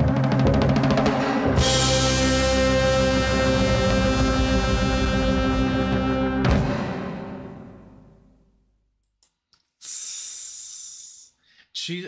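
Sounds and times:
rock music chord: 0.0 - 8.1.

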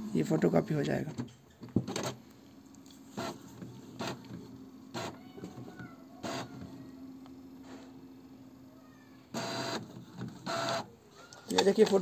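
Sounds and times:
printer humming: 0.0 - 12.0
printer mechanical whirring: 0.0 - 12.0
printer clicks: 11.5 - 12.0.

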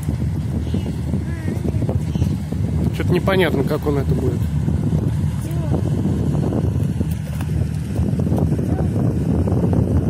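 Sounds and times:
boat engine rumbling: 0.0 - 10.0.

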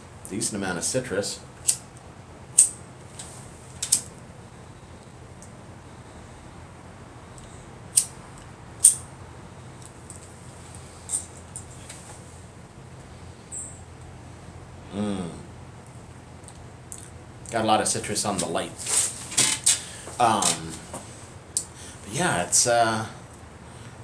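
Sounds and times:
faint low hum: 0.0 - 24.0
lighter clicks and pops: 1.6 - 1.8, 7.9 - 8.2, 8.8 - 9.0.

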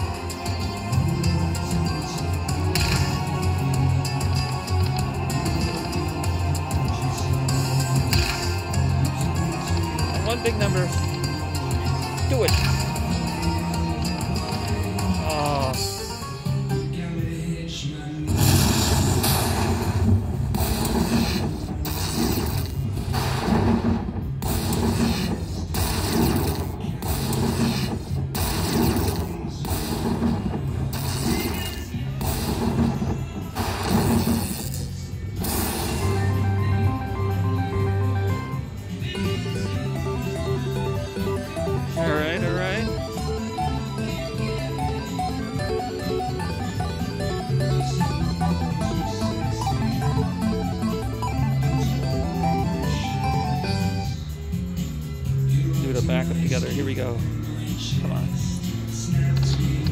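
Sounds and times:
slot machine melodic tune: 0.0 - 17.0, 35.9 - 54.6.

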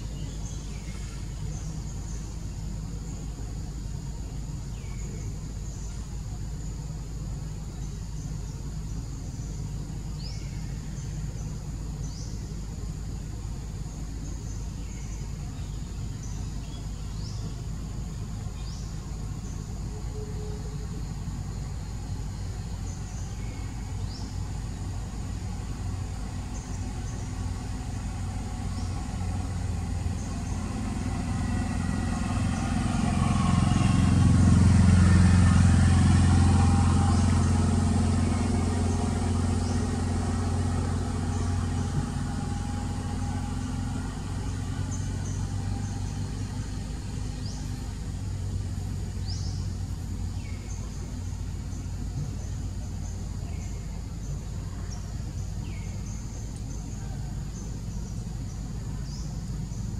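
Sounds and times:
vehicle engine passing by: 0.0 - 59.9.

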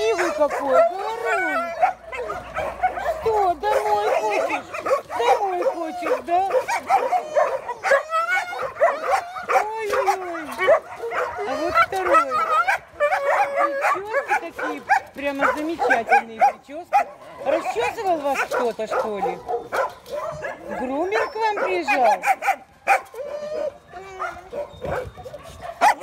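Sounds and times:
dogs whining and yowling: 0.0 - 26.0
dogs yipping: 0.0 - 26.0.

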